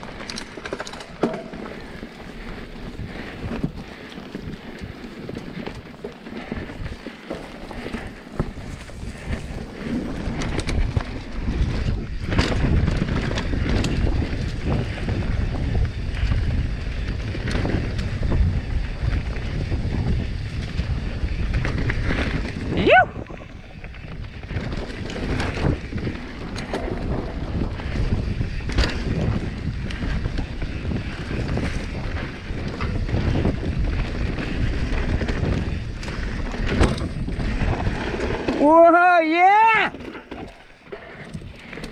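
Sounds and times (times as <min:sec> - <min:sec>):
bike knocks and rattles: 0:00.0 - 0:41.9
tyres rumbling on dirt: 0:00.0 - 0:41.9
wind buffeting microphone: 0:00.0 - 0:41.9
rider whooping: 0:22.6 - 0:23.8.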